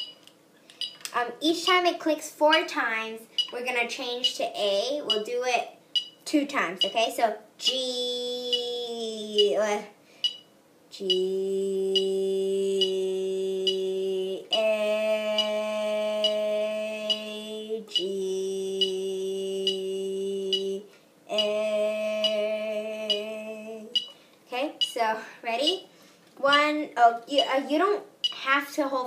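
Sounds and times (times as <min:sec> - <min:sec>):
metronome clicking: 0:00.0 - 0:01.2, 0:03.4 - 0:03.6, 0:05.1 - 0:05.3, 0:05.9 - 0:06.2, 0:08.5 - 0:08.7, 0:10.2 - 0:11.2, 0:11.9 - 0:12.1, 0:13.6 - 0:13.9, 0:15.4 - 0:15.6, 0:16.2 - 0:16.4, 0:17.0 - 0:17.3, 0:17.9 - 0:18.1, 0:18.8 - 0:19.0, 0:19.6 - 0:19.8, 0:21.4 - 0:21.6, 0:22.2 - 0:22.5, 0:23.1 - 0:23.3, 0:23.9 - 0:24.2, 0:28.2 - 0:28.4.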